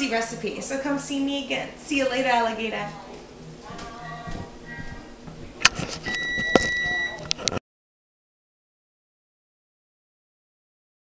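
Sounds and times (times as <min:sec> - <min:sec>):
high-pitched electronic beep: 0:06.1 - 0:07.2.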